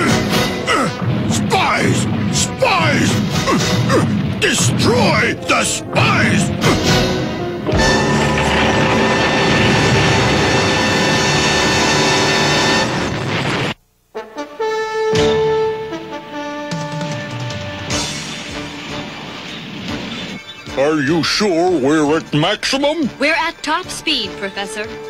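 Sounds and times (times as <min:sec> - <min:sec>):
dramatic orchestral music: 0:00.0 - 0:13.5
loud rushing noise: 0:07.7 - 0:13.8.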